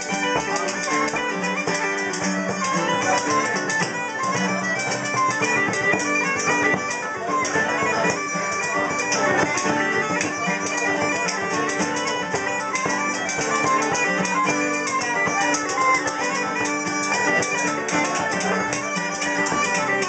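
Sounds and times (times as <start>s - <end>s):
bagpipes playing a fast reel: 0.0s - 20.0s
frame drum beating: 0.0s - 20.0s.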